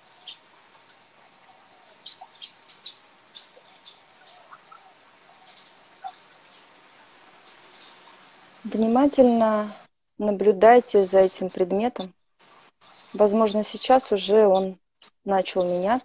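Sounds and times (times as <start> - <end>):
faint bird chirps: 0.0 - 8.8
low steady background hiss: 0.0 - 16.0.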